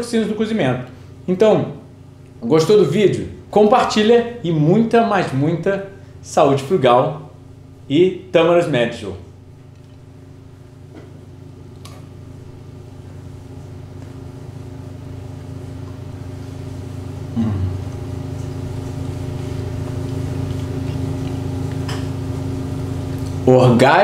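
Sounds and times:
man humming mmm while eating: 0:17.2 - 0:18.7.

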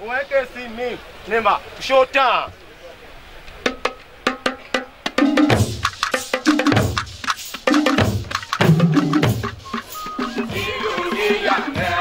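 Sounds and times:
hand drum slaps: 0:03.7 - 0:10.7.

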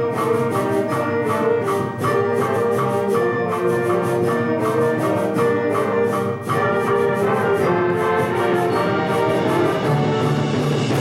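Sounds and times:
symphonic band playing: 0:00.0 - 0:11.0.

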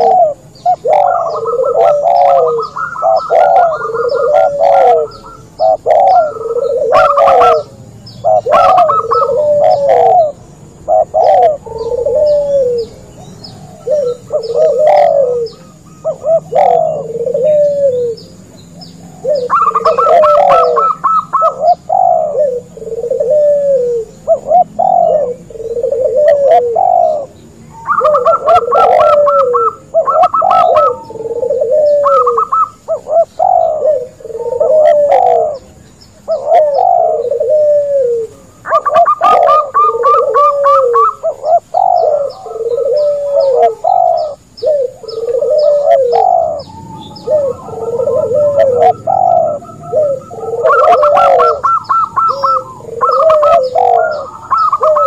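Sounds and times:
low dove coos: 0:00.0 - 0:55.0.

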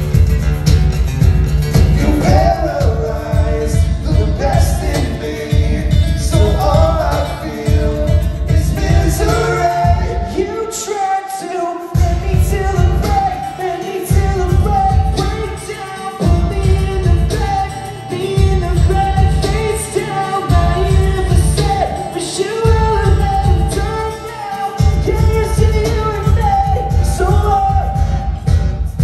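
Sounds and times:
cajon beat: 0:00.0 - 0:10.8, 0:12.0 - 0:29.0
strummed acoustic guitars: 0:00.0 - 0:29.0
man singing: 0:01.8 - 0:28.6.

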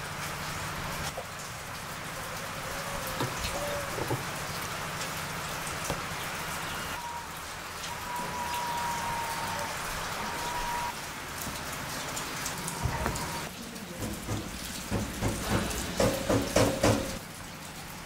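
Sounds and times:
steady rain falling: 0:00.0 - 0:18.0.

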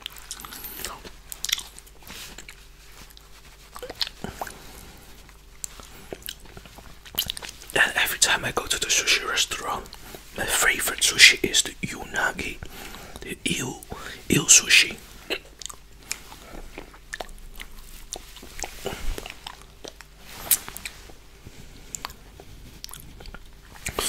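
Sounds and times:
wet chewing and mouth clicks: 0:00.0 - 0:07.8, 0:15.3 - 0:21.2, 0:21.9 - 0:24.0
whispered talk: 0:07.8 - 0:12.6, 0:13.2 - 0:15.4.

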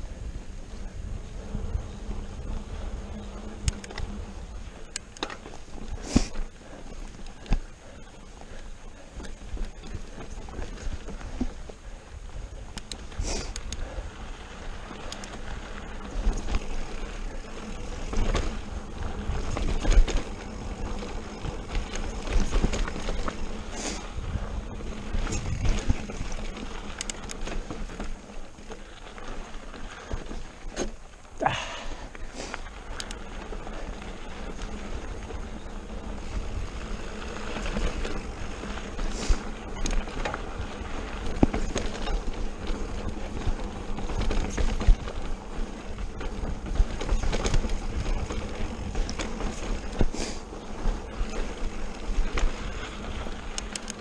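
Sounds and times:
bike tyres rumbling on dirt: 0:00.0 - 0:54.0
bike knocks and rattles: 0:15.0 - 0:24.0, 0:34.5 - 0:54.0
wind on microphone: 0:18.0 - 0:26.8.

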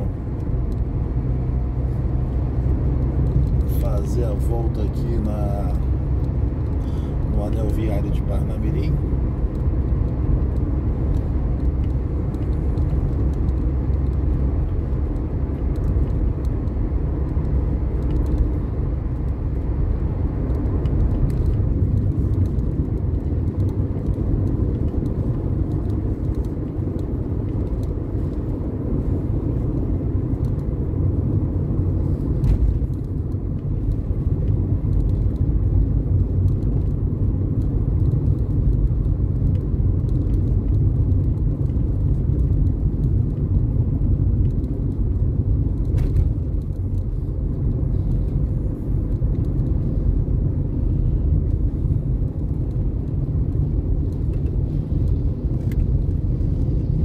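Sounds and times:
car driving on highway from inside: 0:00.0 - 0:57.0.

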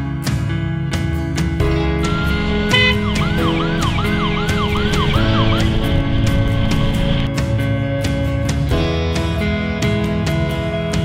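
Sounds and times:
guitar background music: 0:00.0 - 0:11.0
fire engine siren yelping: 0:01.8 - 0:07.3.

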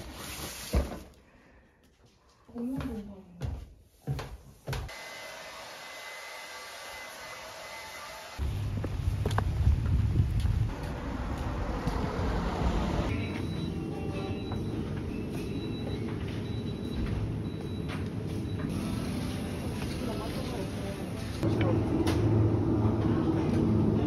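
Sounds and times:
street traffic: 0:08.4 - 0:24.0
supermarket background noise: 0:13.1 - 0:24.0.

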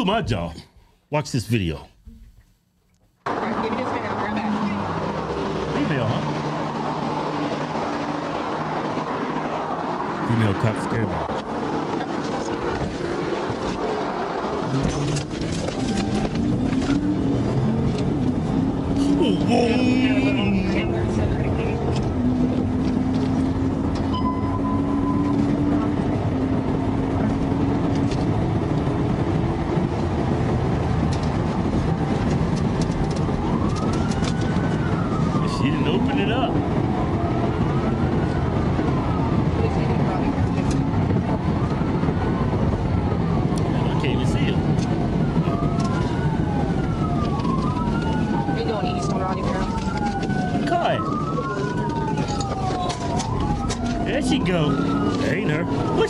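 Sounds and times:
car road and engine noise: 0:00.0 - 0:56.0
police siren wailing: 0:03.3 - 0:56.0.

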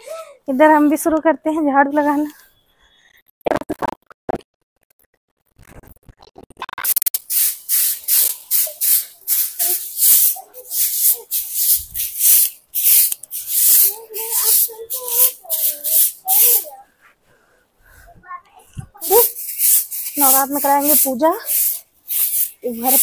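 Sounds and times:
stiff broom sweeping concrete: 0:07.3 - 0:16.8, 0:19.0 - 0:23.0.

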